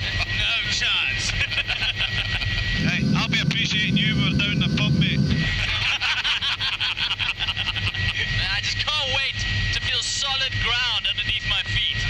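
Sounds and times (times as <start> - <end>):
helicopter whine and rotor rumble: 0.0 - 12.0.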